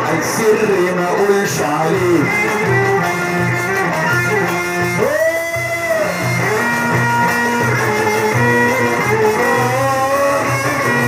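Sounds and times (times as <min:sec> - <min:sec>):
violin melody: 0:00.0 - 0:11.0.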